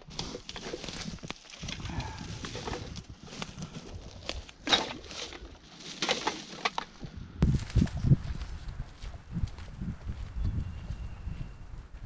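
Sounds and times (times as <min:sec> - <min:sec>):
dry leaves crunching: 0:00.0 - 0:06.7, 0:07.4 - 0:10.3.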